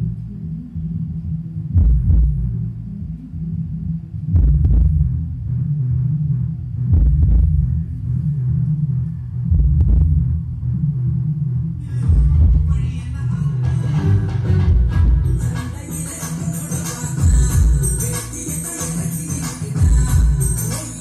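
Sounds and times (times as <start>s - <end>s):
deep bass beats: 0.0s - 21.0s.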